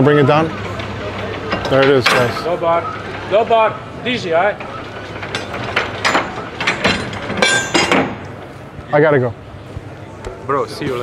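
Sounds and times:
anchor chain clinking and rattling: 4.6s - 8.2s.

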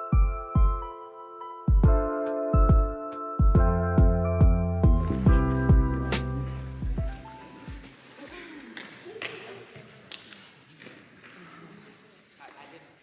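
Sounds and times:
calm hip-hop music: 0.0s - 7.9s.

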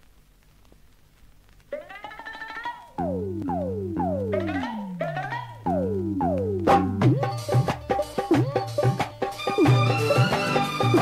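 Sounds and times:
faint low hum: 0.0s - 7.4s
synthesizer tone sliding up: 3.0s - 7.4s.

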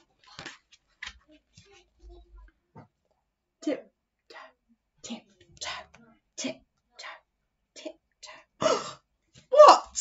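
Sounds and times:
book pages turning: 0.0s - 1.8s.

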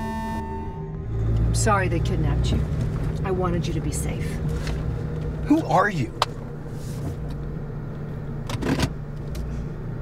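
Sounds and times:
car engine rumble from cabin: 0.0s - 10.0s.

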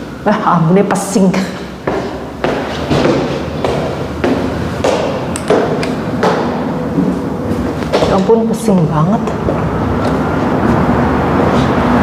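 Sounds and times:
footsteps on tiled stairs: 1.3s - 12.0s.

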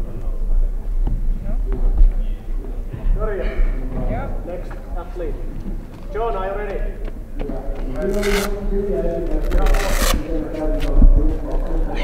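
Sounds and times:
indistinct talking: 0.0s - 12.0s.

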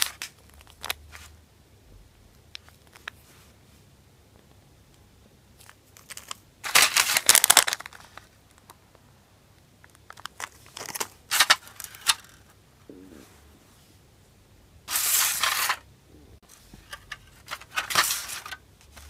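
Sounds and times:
plastic packaging crinkling: 0.0s - 1.3s, 5.6s - 8.7s, 9.8s - 12.5s, 16.9s - 19.0s.

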